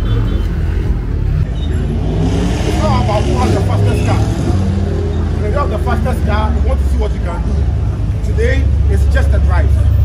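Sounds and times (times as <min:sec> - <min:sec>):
car engines idling: 0:00.0 - 0:10.0
men talking: 0:02.5 - 0:10.0.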